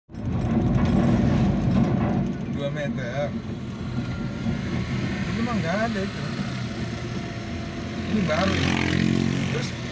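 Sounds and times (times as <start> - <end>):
car engine rumble: 0.1 - 9.9
road noise while driving: 0.1 - 9.9.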